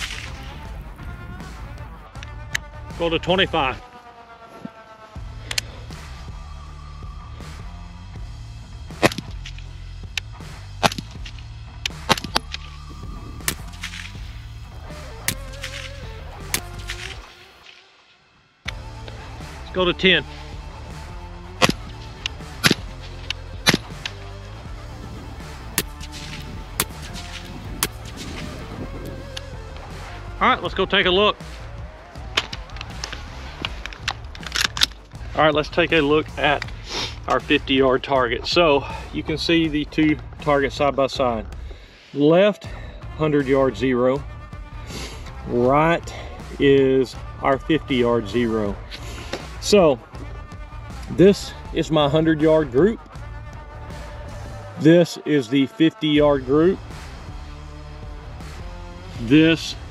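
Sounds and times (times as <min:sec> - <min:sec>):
background music: 0:00.0 - 0:59.9
suppressed rifle shots: 0:13.4 - 0:14.2, 0:21.6 - 0:24.2
rifle handling clicks and knocks: 0:32.4 - 0:35.1.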